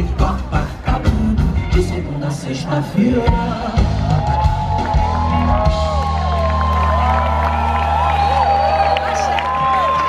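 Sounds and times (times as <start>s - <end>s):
crowd whooping and cheering: 3.7s - 10.0s.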